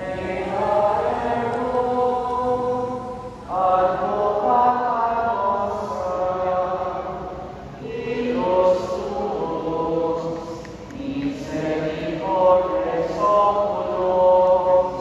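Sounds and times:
group singing a hymn: 0.0 - 15.0.

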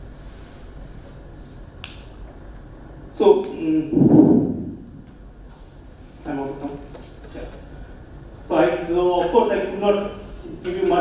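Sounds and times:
low hum: 3.6 - 5.4.

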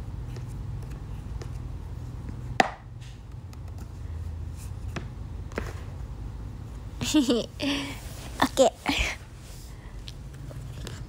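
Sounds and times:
steady low hum: 0.0 - 11.0
sharp tap of hard object: 2.6 - 2.8.

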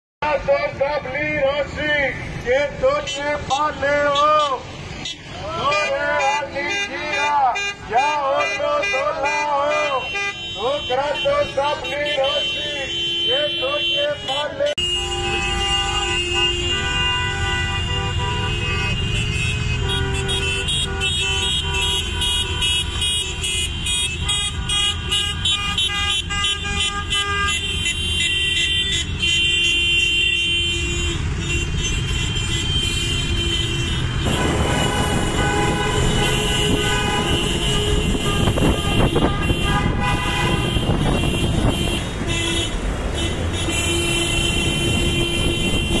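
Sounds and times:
engines and traffic: 0.2 - 46.0
car horns honking: 1.4 - 46.0.

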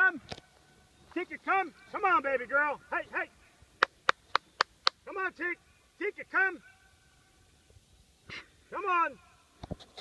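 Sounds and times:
sharp hand claps: 3.8 - 5.0.

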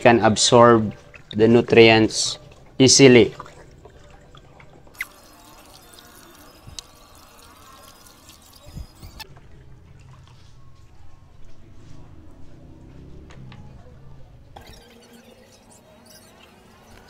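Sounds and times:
water swishing and trickling: 0.0 - 17.0.

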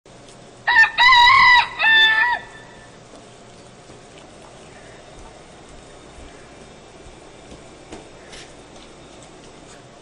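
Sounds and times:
rooster crowing: 0.6 - 3.0.

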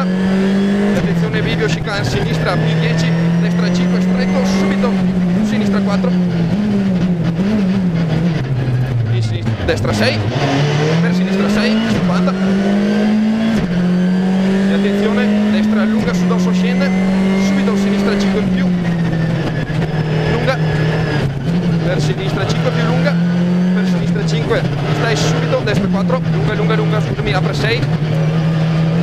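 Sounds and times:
rally car engine revving: 0.0 - 29.0.

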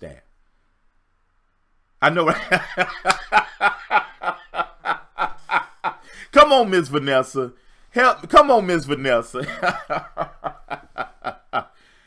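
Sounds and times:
man laughing heartily: 2.1 - 6.3, 9.3 - 11.9.

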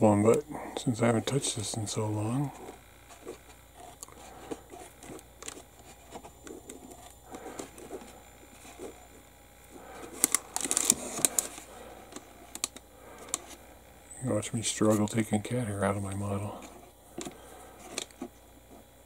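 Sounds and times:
scalpel clicking and scraping plastic: 10.0 - 13.6, 16.6 - 18.3.

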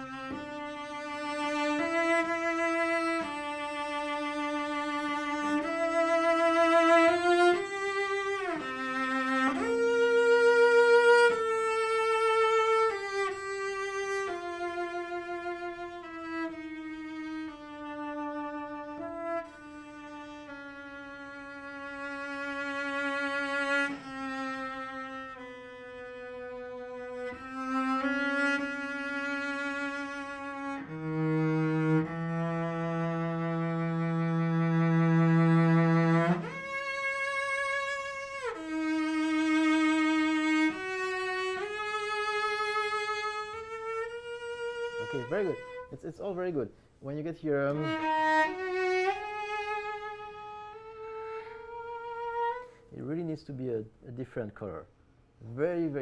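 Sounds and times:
solo cello melody: 0.0 - 53.3.

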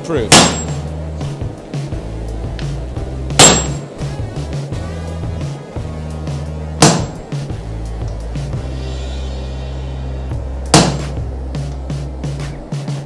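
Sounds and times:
background music with beat: 0.0 - 13.0
sledgehammer striking metal tool: 0.3 - 0.9, 3.3 - 3.9, 6.8 - 7.2, 10.7 - 11.2.

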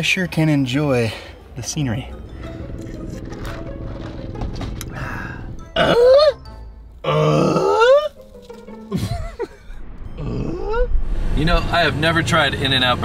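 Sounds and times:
background music: 1.0 - 13.0.

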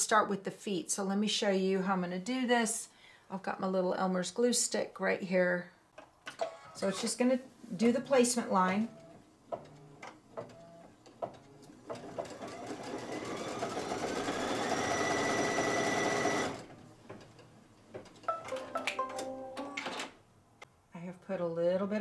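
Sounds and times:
embroidery machine stitching: 8.0 - 17.4.

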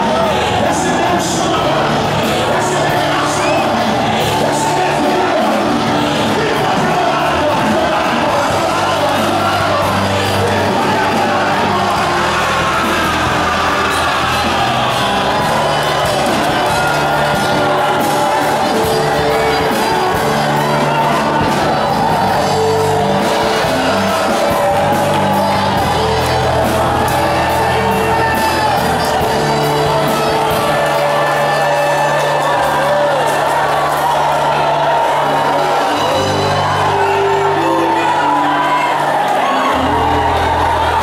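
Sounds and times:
congregation singing and calling out: 0.0 - 41.0
worship music with bass line: 0.0 - 41.0.

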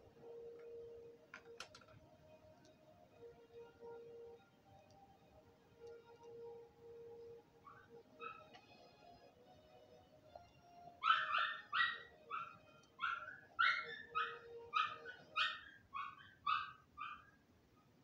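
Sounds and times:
faint music from speakers: 0.0 - 18.0
dog yapping: 11.0 - 17.4.

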